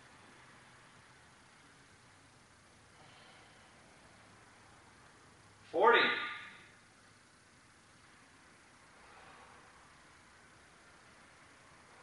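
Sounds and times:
man counting: 5.7s - 6.4s.

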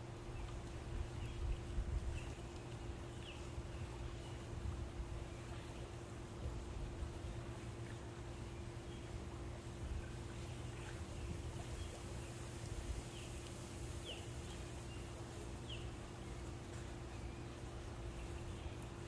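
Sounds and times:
pool pump humming: 0.0s - 19.0s.

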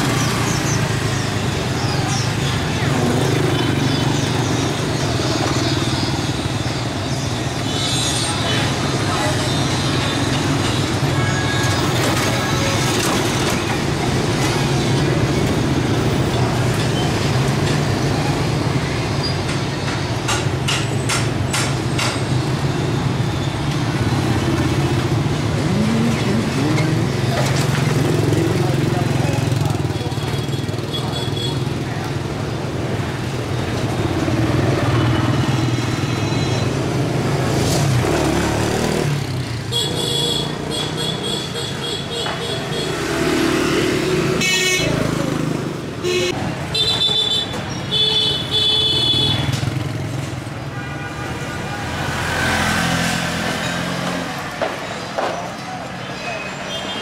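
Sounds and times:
motorbike traffic hum: 0.0s - 57.0s.

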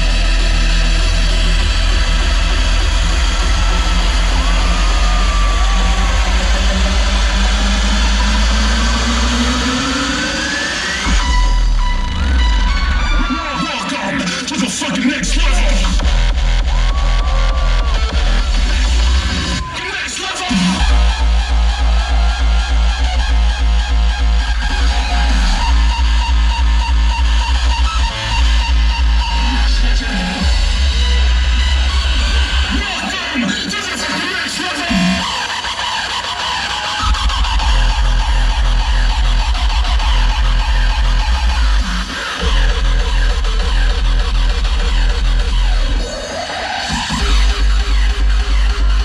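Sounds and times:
heavy distorted kick drum: 0.0s - 9.8s, 15.2s - 19.7s, 20.4s - 32.8s, 37.0s - 46.0s
hardstyle dance music: 0.0s - 49.0s.

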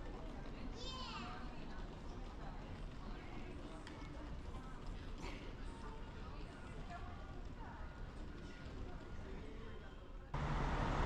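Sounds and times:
distant chatter of people: 0.0s - 10.8s.

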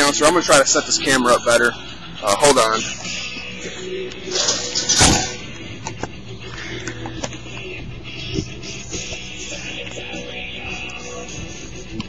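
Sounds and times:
guitar music: 0.0s - 12.0s.

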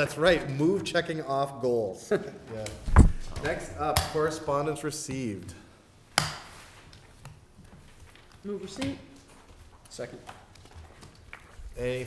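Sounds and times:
faint paper handling noises: 6.4s - 12.0s.

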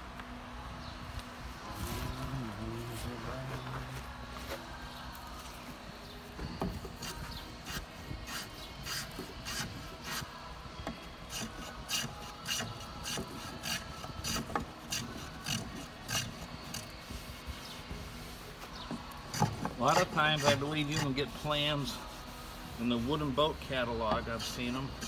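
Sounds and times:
hand plane scraping wood: 6.6s - 10.2s, 11.3s - 25.0s.

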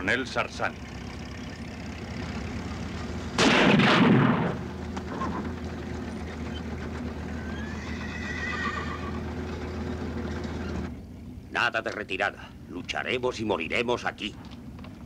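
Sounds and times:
horse neighing: 7.3s - 9.4s.

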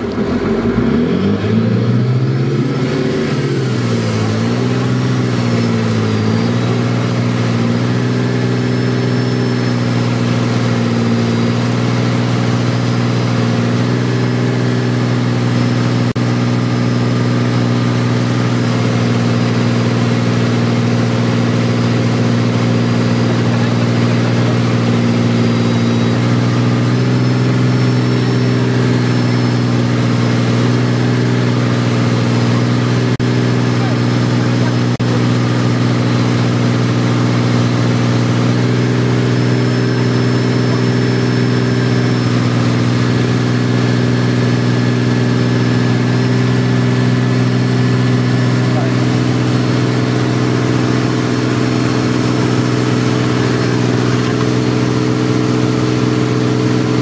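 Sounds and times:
boat engine humming: 0.0s - 57.0s.

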